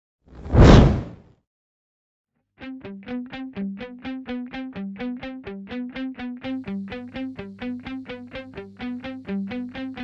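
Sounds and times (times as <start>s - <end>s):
whoosh with deep rumble: 0.4s - 1.2s.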